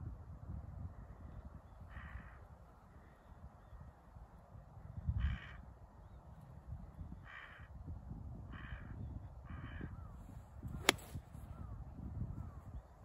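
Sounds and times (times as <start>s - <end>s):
crow cawing: 7.3s - 7.7s
golf club striking ball: 10.8s - 11.2s.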